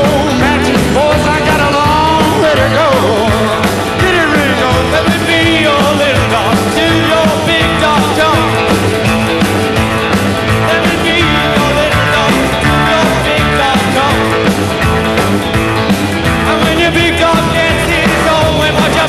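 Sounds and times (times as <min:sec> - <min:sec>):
drums: 0:00.0 - 0:19.0
electric guitar: 0:00.0 - 0:19.0
man singing lead: 0:00.0 - 0:19.0
walking bass line: 0:00.0 - 0:19.0.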